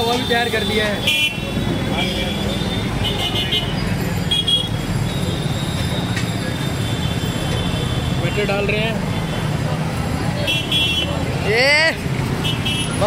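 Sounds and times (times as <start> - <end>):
background chatter: 0.0 - 13.0
traffic rumble: 0.0 - 13.0.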